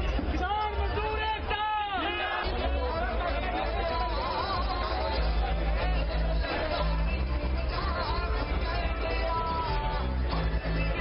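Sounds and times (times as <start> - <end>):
crowd shouting: 0.0 - 11.0
music with deep bass: 0.0 - 11.0.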